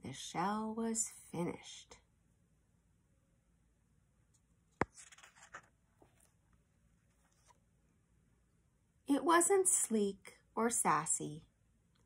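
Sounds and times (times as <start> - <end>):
page turning rustle: 4.8 - 6.4, 7.1 - 7.6.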